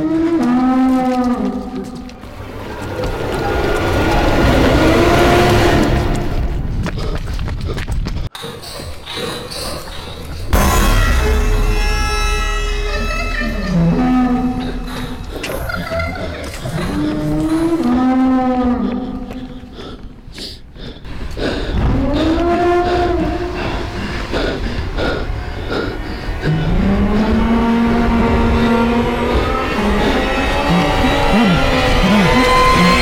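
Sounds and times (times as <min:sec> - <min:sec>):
low moaning tone: 0:10.5 - 0:19.3, 0:21.8 - 0:33.0.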